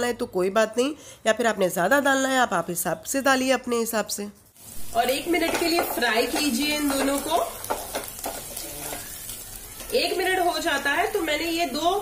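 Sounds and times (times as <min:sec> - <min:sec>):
chillies sizzling in hot oil: 0:03.0 - 0:12.0.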